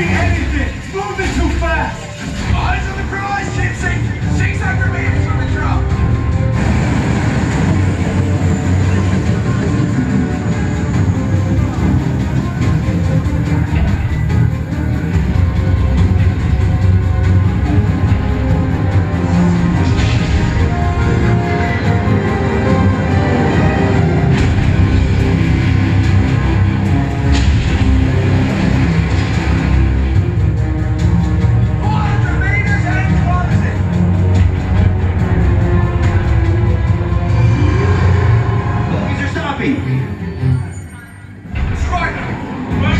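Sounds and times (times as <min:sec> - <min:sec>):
heavy bass rumble: 0:00.0 - 0:39.4
dark film score music: 0:00.0 - 0:42.9.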